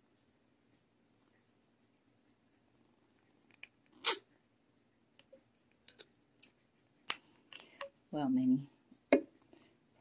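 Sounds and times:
kitten sneezing: 4.0 - 4.3.

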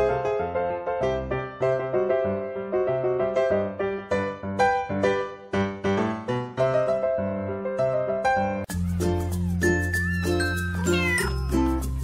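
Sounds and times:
background music with bass line: 8.7 - 12.0
cat meowing: 10.6 - 11.5.

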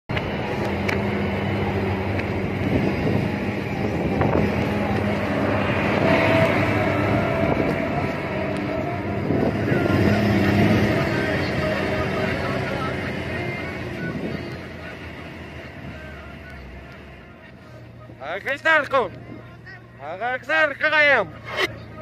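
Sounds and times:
road and wind noise: 0.1 - 22.0
truck engine humming: 0.1 - 22.0.

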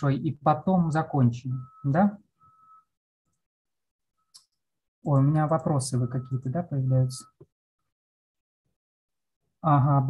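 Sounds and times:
man speaking over video call: 0.0 - 2.3, 5.0 - 7.4, 9.6 - 10.0
faint high-pitched tone: 5.3 - 7.4.

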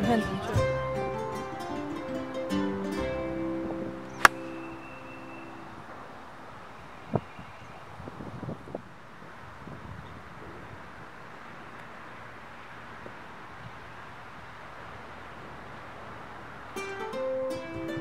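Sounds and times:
golf club striking ball: 4.1 - 5.0.

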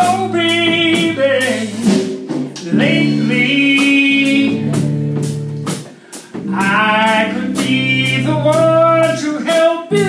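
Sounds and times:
man singing: 0.0 - 4.9, 6.4 - 10.0
drum kit with cymbals: 0.0 - 10.0
electric bass guitar: 0.0 - 10.0.

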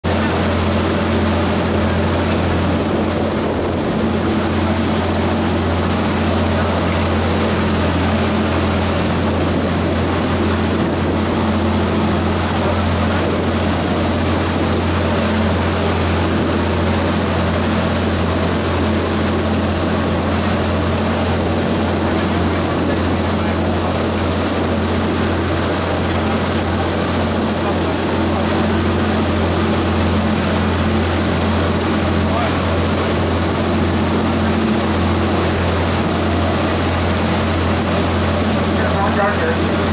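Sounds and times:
boat engine droning: 0.0 - 39.9.

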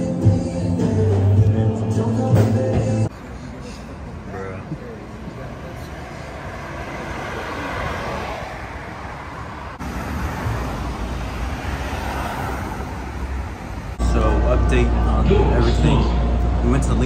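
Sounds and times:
cars driving past: 3.1 - 17.0.

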